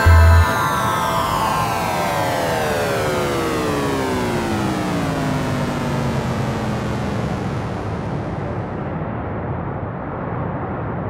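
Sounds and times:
synth chord sliding down: 0.0 - 8.8.

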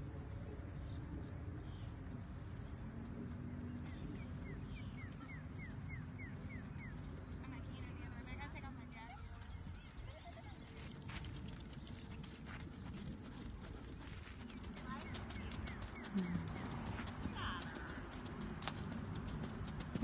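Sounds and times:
horse hoofbeats on sand: 2.5 - 20.0.

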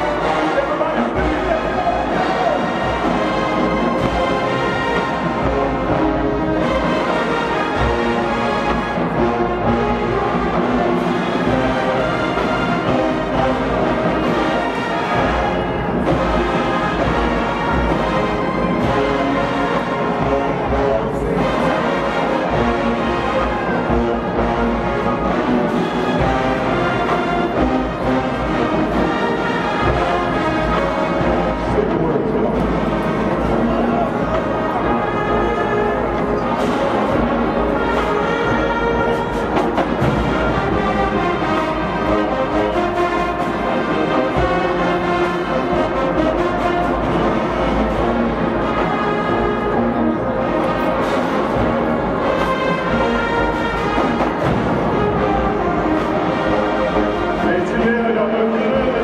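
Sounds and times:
marching band brass and drums: 0.0 - 59.0.

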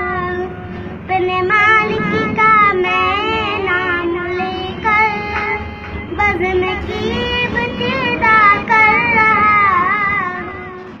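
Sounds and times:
boy singing devotional song: 0.0 - 11.0.

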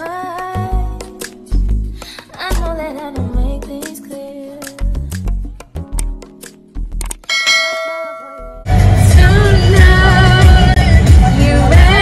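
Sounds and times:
loud music with singing: 8.7 - 12.0.

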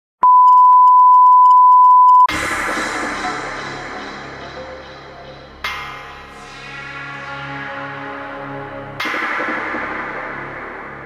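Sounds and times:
steady test tone beep: 0.2 - 2.3.

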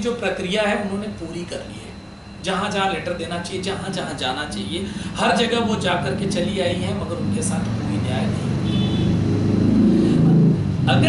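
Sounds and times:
man speaking: 0.0 - 8.6.

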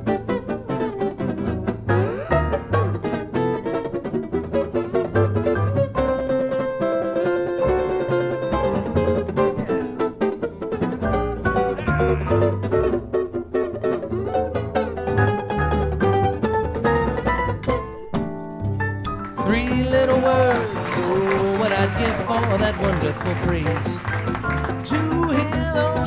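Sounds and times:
jazz guitar picking: 0.0 - 26.0
upright bass notes: 0.0 - 26.0.

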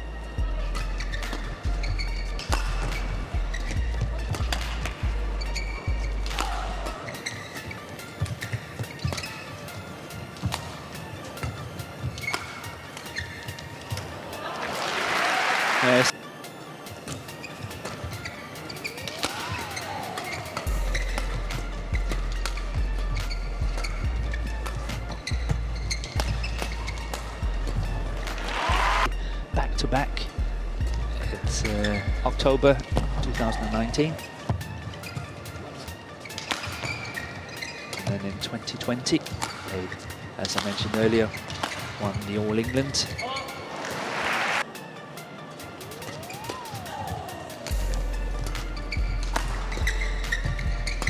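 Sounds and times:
background music with bass beat: 0.0 - 7.1, 20.7 - 34.1, 45.9 - 51.0
racket hitting shuttlecock: 6.2 - 6.7, 12.1 - 14.1, 19.0 - 21.4, 26.0 - 28.5, 36.3 - 38.1, 40.4 - 42.0.

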